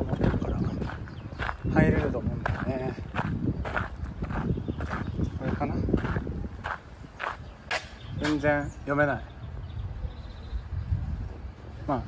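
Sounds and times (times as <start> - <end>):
footsteps on gravel: 0.0 - 8.4.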